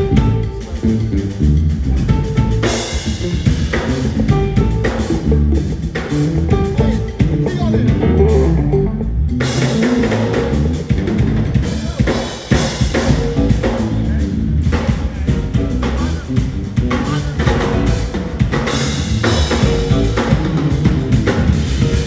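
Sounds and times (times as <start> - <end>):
drum kit with cymbals: 0.0 - 22.0
live band playing: 0.0 - 22.0.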